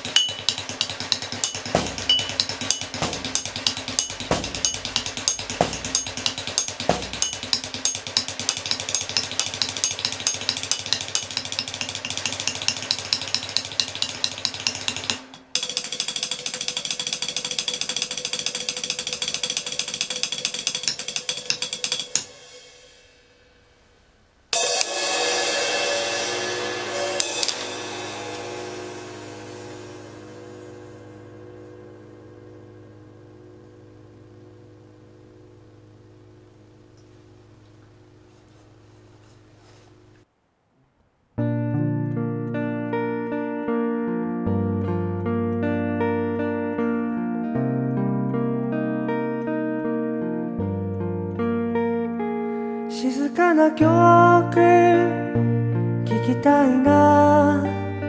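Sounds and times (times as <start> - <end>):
drumsticks striking metal hardware: 0.0 - 22.6
loud metallic ringing strike: 1.4 - 7.7, 24.6 - 37.0.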